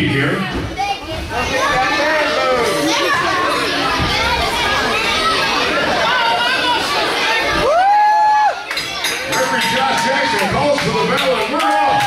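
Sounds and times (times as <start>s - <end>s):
crowd calling out and shouting: 0.0s - 12.0s.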